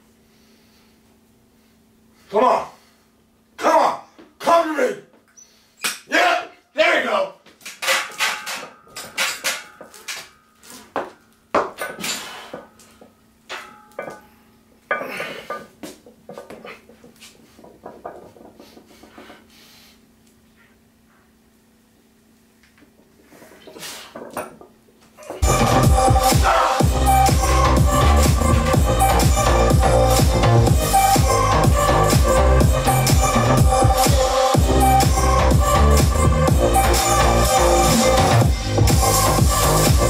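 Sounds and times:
man shouting and grunting: 3.6s - 5.1s, 6.1s - 7.4s, 26.2s - 26.9s
barbell clanking and rattling: 7.8s - 10.4s, 13.5s - 14.3s
steady low hum: 8.4s - 40.0s
weight plates knocking: 14.9s - 19.3s.

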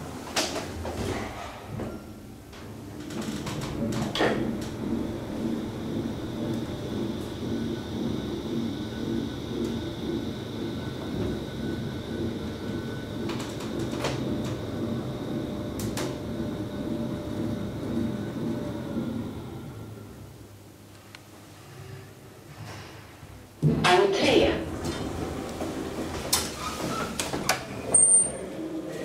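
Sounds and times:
elevator ride rumble: 0.0s - 29.0s.

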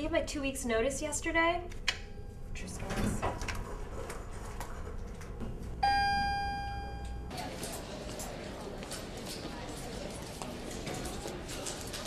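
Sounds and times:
elevator chime ding: 5.8s - 7.3s.

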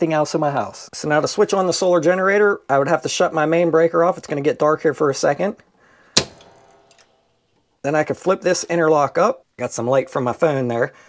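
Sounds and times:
faint electrical hum: 2.3s - 9.1s
breaker switch click: 6.2s - 7.2s.

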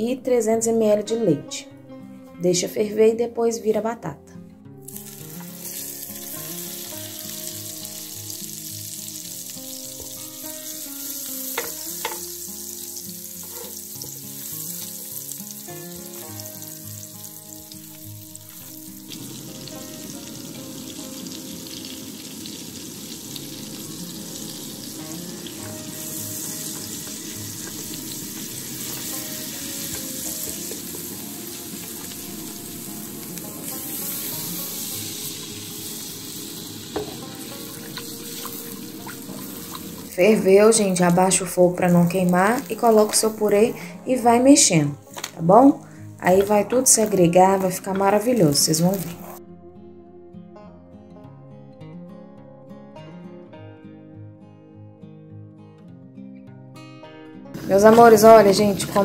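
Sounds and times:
butter sizzling in a pan: 4.8s - 44.3s, 46.3s - 49.4s, 57.6s - 59.0s
spoon clicking on pan: 11.6s - 12.2s.

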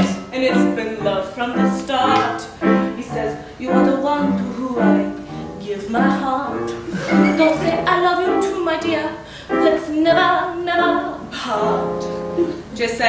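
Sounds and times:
woman singing: 0.0s - 12.1s, 12.7s - 13.0s
pulsing piano: 0.0s - 12.7s.

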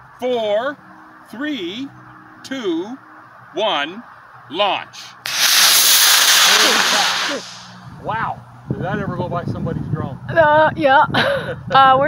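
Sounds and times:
rocket motor rushing hiss: 5.2s - 7.9s.

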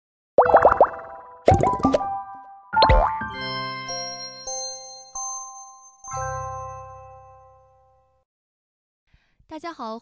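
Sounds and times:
cartoon rising bloops: 0.4s - 2.1s.

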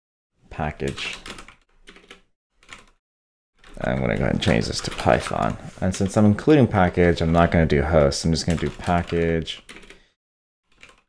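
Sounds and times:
typing on computer keyboard: 0.9s - 3.0s, 3.6s - 6.2s, 8.4s - 10.1s, 10.7s - 11.0s.

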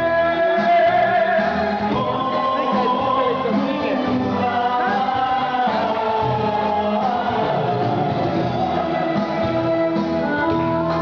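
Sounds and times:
folk song with held singing: 0.0s - 11.0s.

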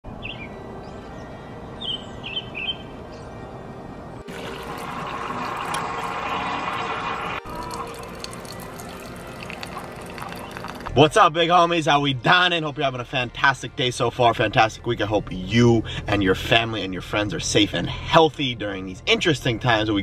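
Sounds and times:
bird chirps: 0.1s - 3.4s
coffee running into a mug: 4.3s - 10.9s
water pouring into paper cup: 4.3s - 10.9s.

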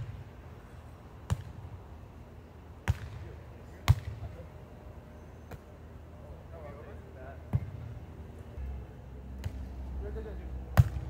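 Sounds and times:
volleyball slaps: 1.3s - 1.6s, 2.8s - 3.2s, 3.8s - 4.3s, 9.4s - 9.7s, 10.8s - 11.0s.

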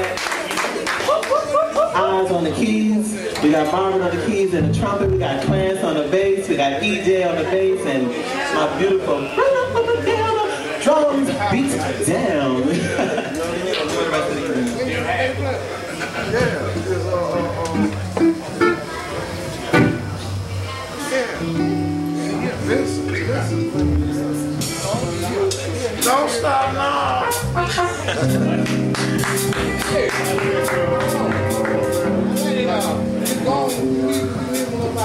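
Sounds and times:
live band playing: 1.4s - 12.7s, 14.6s - 35.0s
bass guitar notes: 3.6s - 7.6s, 16.6s - 35.0s
keyboard chords: 3.7s - 6.5s, 16.6s - 35.0s.

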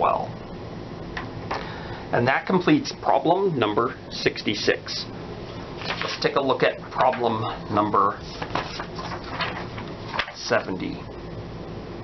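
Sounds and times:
paper rustling and sliding: 5.8s - 7.4s, 8.1s - 10.5s.

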